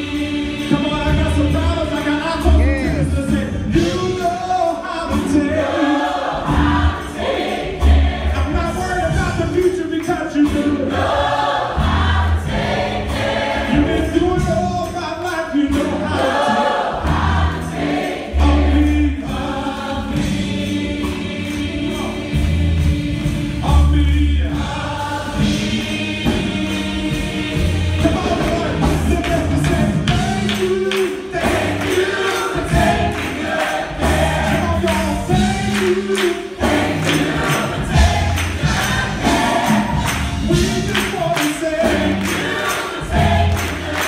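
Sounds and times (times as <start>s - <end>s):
gospel choir singing: 0.0s - 44.0s
live band playing: 0.0s - 44.0s.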